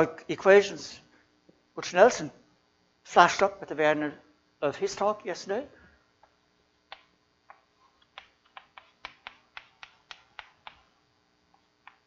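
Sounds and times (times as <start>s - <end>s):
chalk tapping on a blackboard: 8.0s - 10.9s.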